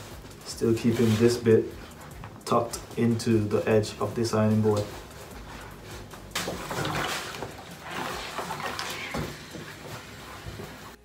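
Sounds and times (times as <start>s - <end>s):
fabric rustling and rubbing: 0.0s - 2.4s, 4.4s - 11.0s.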